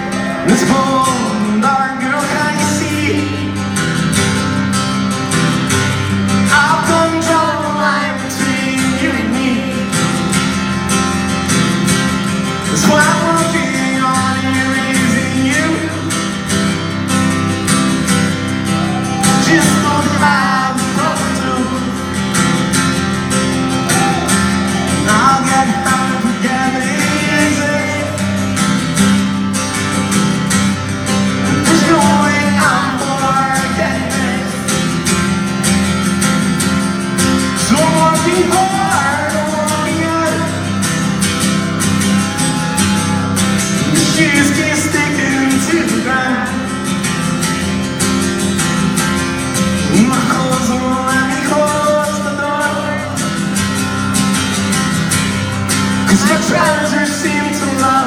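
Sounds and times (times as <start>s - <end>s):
person singing: 0.0s - 3.8s, 6.4s - 10.8s, 12.5s - 16.4s, 18.6s - 22.4s, 23.4s - 29.0s, 31.2s - 35.0s, 37.5s - 47.0s, 49.8s - 53.8s, 56.0s - 58.0s
acoustic guitar strumming: 0.0s - 58.0s.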